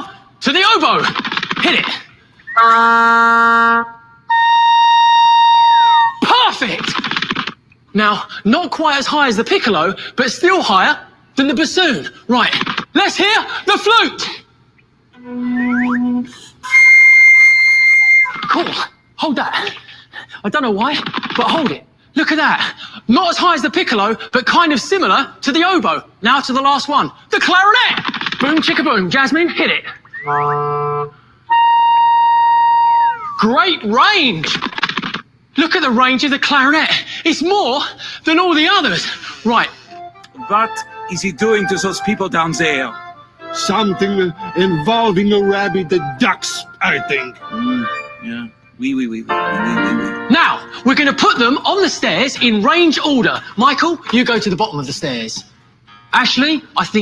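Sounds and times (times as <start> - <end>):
oboe high held note: 2.5 - 6.2, 15.2 - 18.3, 30.2 - 33.4, 40.4 - 50.7
oboe low note: 2.5 - 6.2, 15.2 - 17.4, 30.1 - 33.4, 40.4 - 50.3.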